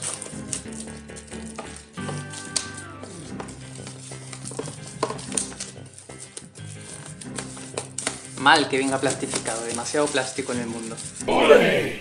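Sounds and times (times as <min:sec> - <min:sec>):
plastic shrink wrap crinkling: 0:00.0 - 0:11.2.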